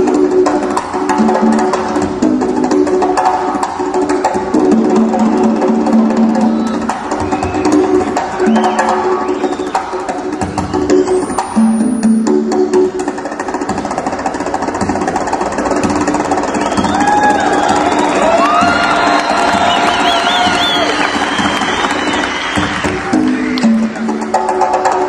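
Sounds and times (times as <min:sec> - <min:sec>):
congas played fast: 0:00.0 - 0:25.0.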